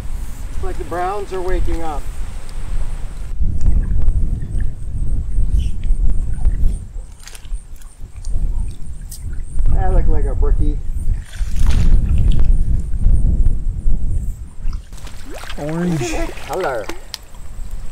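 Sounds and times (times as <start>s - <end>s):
wind rumble on microphone: 0.0s - 17.9s
water sloshing around wading legs: 6.4s - 9.5s, 14.8s - 17.5s
short splashes or knocks: 11.2s - 12.4s, 14.9s - 17.3s.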